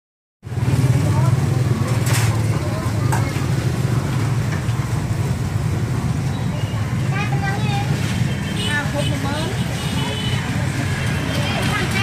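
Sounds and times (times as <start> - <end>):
traffic rumble: 0.4 - 12.0.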